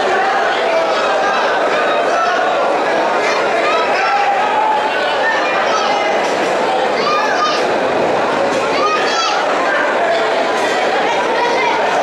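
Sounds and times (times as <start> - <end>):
crowd chattering and calling out: 0.0 - 12.0.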